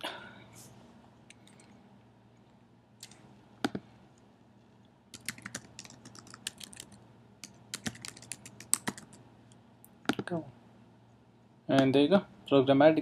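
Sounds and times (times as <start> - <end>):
typing on computer keyboard: 5.2 - 9.2.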